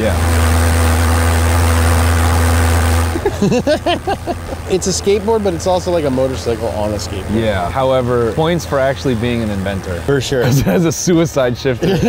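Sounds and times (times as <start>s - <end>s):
pulse jet engine drone: 0.0s - 12.0s.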